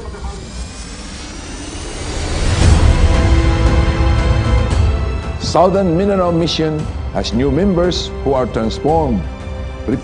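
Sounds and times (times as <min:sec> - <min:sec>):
rushing whooshing noise: 0:00.0 - 0:05.4
background music: 0:00.0 - 0:10.0.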